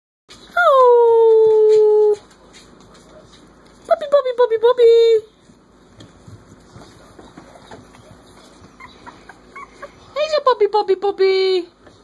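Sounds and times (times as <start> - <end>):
puppy howling: 8.7 - 10.0.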